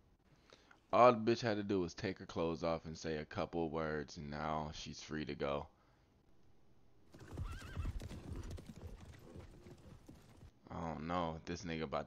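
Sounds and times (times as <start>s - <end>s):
horse whinny: 7.1s - 10.4s
horse hooves clopping: 7.1s - 10.5s.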